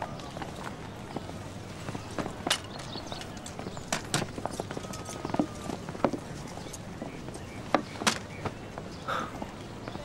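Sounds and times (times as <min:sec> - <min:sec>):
horse hooves clopping: 0:00.0 - 0:10.0.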